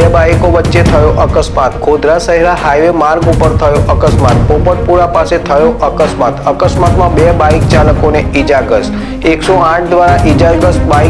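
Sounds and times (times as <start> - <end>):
deep booming drum hits: 0.0 - 2.0, 3.2 - 5.3, 6.6 - 8.4
dramatic news music: 0.0 - 11.0
person speaking: 0.0 - 11.0.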